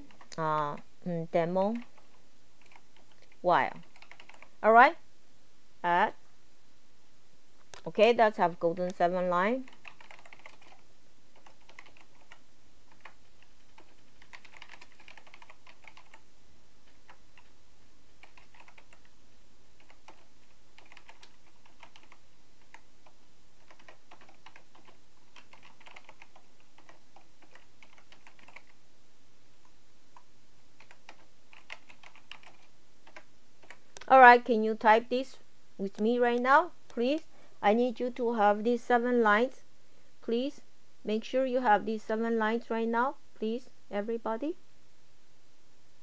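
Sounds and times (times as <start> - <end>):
typing on computer keyboard: 1.8 - 4.5, 9.7 - 16.2, 18.2 - 19.1, 19.8 - 28.8, 30.8 - 33.8.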